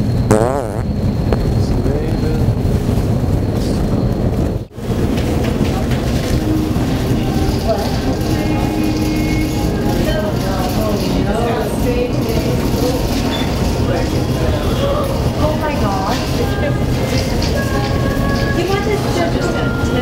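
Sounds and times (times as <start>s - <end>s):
store background rumble: 0.0s - 20.0s
indistinct voices: 4.8s - 20.0s.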